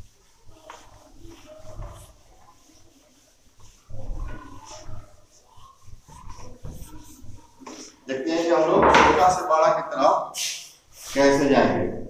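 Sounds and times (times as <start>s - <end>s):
duster wiping whiteboard: 0.0s - 12.0s.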